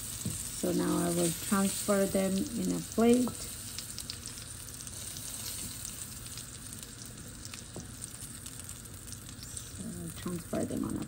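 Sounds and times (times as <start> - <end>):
scallops sizzling in a skillet: 0.0 - 11.0.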